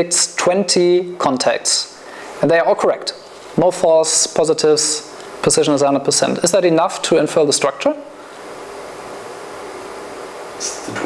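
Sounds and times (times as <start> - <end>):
steady room tone hiss: 0.0 - 11.0.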